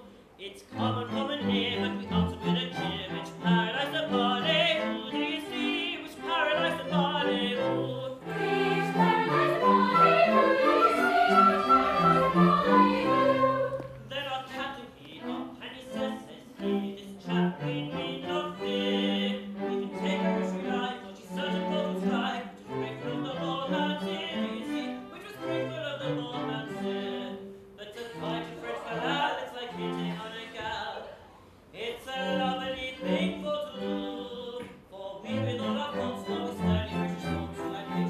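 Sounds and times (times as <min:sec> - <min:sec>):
orchestra playing: 0:00.7 - 0:14.2, 0:32.2 - 0:34.4, 0:35.3 - 0:38.0
chorus singing: 0:00.8 - 0:14.1.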